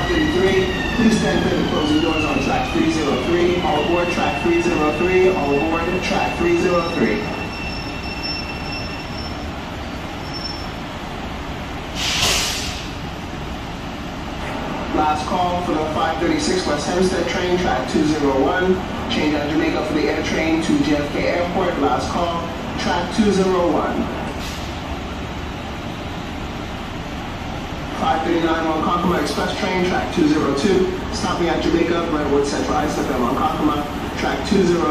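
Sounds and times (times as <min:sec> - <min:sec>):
air release hiss: 0:11.9 - 0:13.0.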